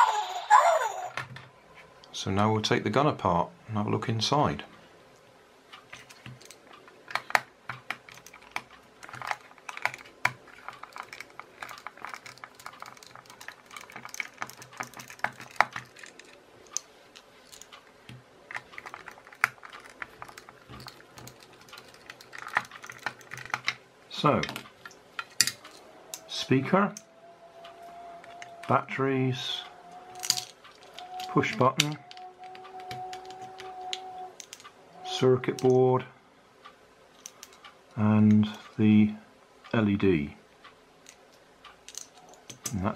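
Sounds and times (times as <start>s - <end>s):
small parts clicking on table: 5.9s - 23.8s, 24.4s - 26.3s, 30.1s - 34.8s, 37.2s - 37.7s, 41.0s - 42.9s
screwdriver clicking on plastic: 6.0s - 23.8s.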